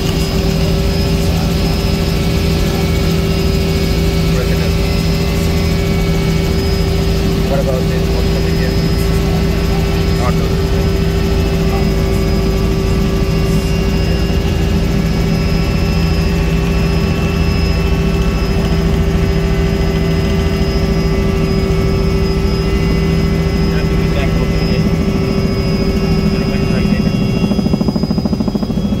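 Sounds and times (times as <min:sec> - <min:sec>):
helicopter engine and rotor: 0:00.0 - 0:29.0.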